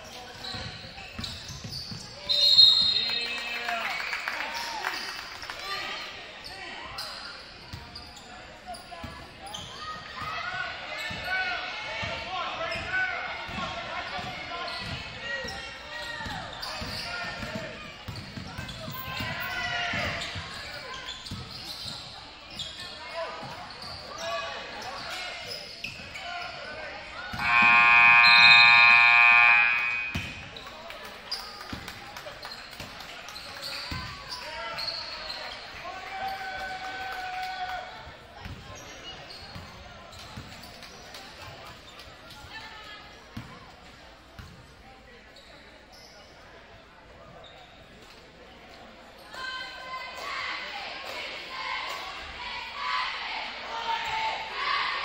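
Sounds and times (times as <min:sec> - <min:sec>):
scoreboard buzzer: 0:27.4 - 0:30.5.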